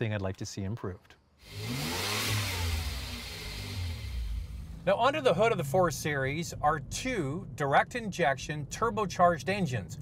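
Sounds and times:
car engine accelerating past: 0:01.4 - 0:04.8.

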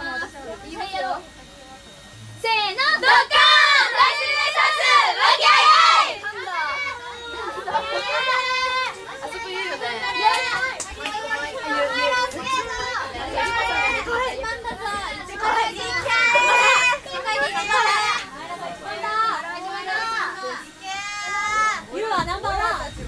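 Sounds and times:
girls chattering excitedly: 0:02.4 - 0:23.0.

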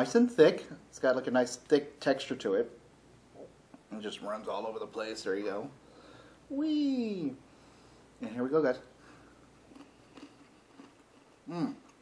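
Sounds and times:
cracker crunching while chewed: 0:09.6 - 0:12.0.

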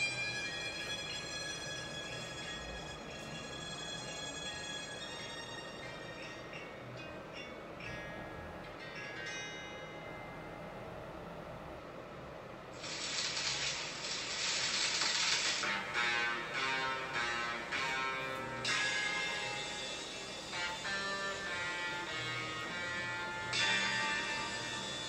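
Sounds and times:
background music: 0:00.0 - 0:11.0, 0:12.8 - 0:25.0
bright hissing wash: 0:12.7 - 0:25.0.

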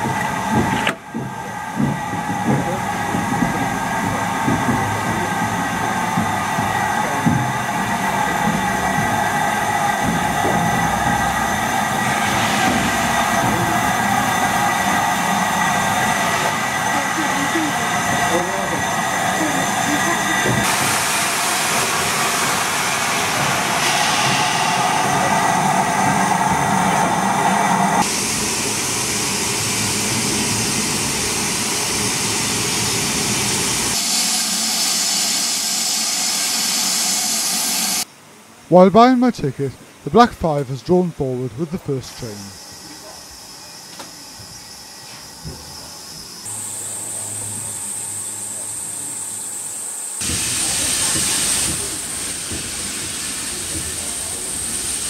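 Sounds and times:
steam hissing from locomotive: 0:00.0 - 0:38.1, 0:41.8 - 0:55.0
people talking: 0:17.0 - 0:20.7, 0:38.7 - 0:43.2.

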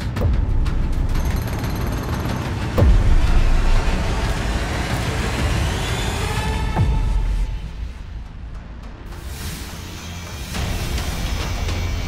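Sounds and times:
trailer-style music: 0:00.0 - 0:12.0.

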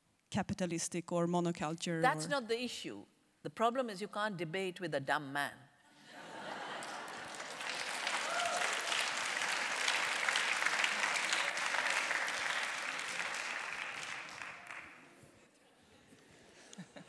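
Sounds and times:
audience applauding: 0:06.5 - 0:15.2.

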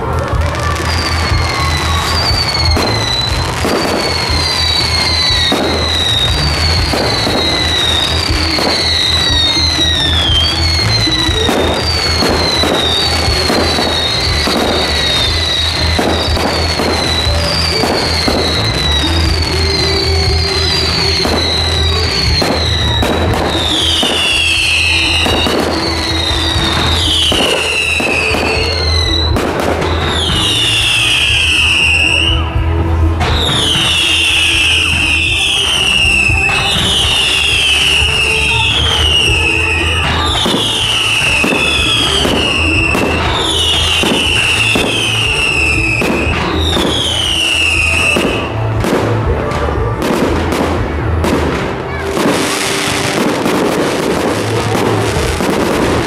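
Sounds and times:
fireworks bangs and crackles: 0:00.0 - 0:56.0
fireworks falling whistles: 0:00.0 - 0:56.0
music: 0:00.0 - 0:56.0.

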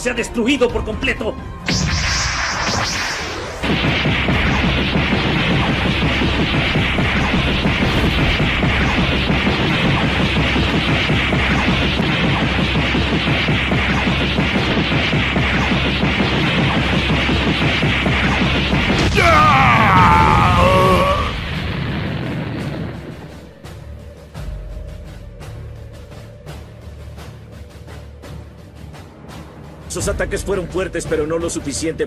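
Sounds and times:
whooshes: 0:01.6 - 0:24.0
rapid punch and kick impacts: 0:03.6 - 0:21.3.

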